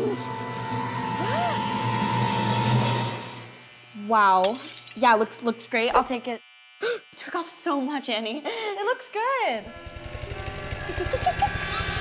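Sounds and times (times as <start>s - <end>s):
electric hair clippers cutting hair: 0.0s - 12.0s.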